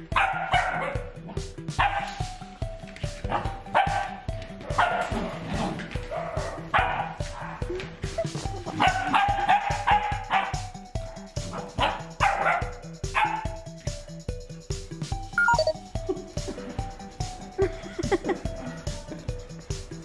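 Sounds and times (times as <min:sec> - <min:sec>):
background music with steady beat: 0:00.0 - 0:20.0
puppies yipping and barking: 0:08.2 - 0:10.8, 0:11.5 - 0:13.6.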